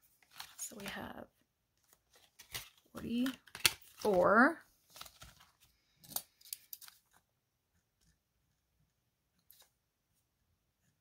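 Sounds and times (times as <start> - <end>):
paper rustling: 0.0 - 1.1, 1.8 - 7.3.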